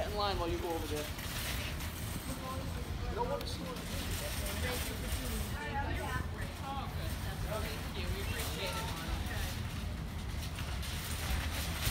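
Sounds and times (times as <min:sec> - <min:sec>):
low outdoor rumble: 0:00.0 - 0:11.9.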